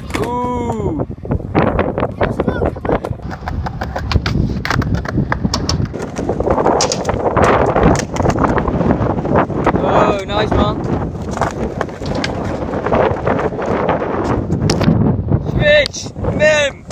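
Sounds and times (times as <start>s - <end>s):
skateboard wheels rolling on concrete: 0.0s - 16.9s
wind rumble on microphone: 0.0s - 16.9s
wheels clacking over joints: 11.2s - 13.2s.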